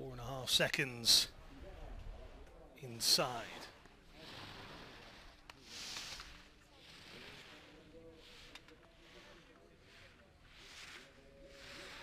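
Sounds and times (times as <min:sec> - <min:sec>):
skis carving on snow: 0:02.9 - 0:12.0.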